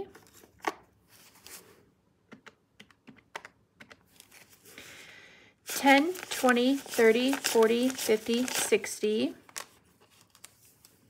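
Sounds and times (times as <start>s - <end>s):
paper banknotes rustling: 4.1s - 4.8s, 5.7s - 11.0s.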